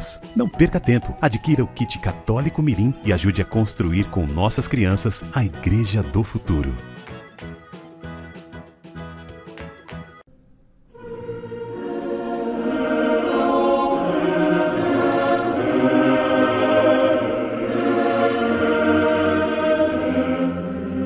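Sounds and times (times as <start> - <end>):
choir singing held chords: 10.9 - 21.0.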